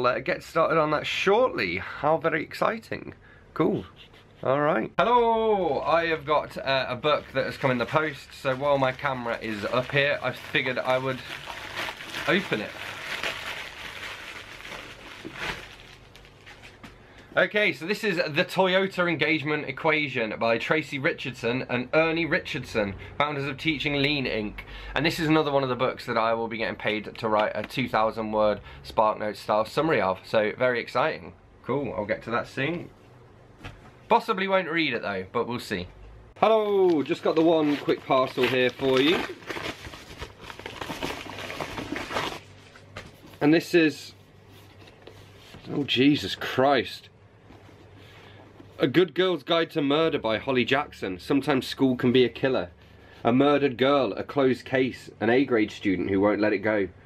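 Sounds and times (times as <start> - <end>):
paper rustling and crinkling: 7.1 - 17.0, 36.8 - 43.4.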